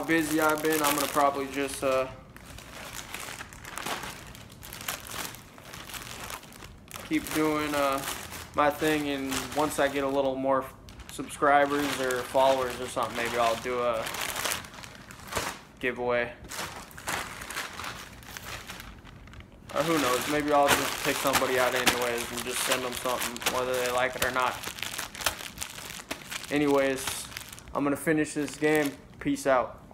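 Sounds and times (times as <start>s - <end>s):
plastic bag crinkling: 0.0s - 29.4s.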